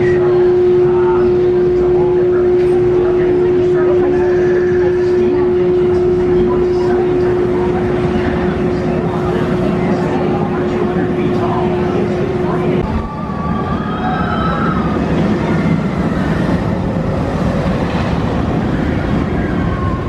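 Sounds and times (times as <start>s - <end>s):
loud steady machine hum: 0.0s - 20.0s
people chattering: 0.0s - 20.0s.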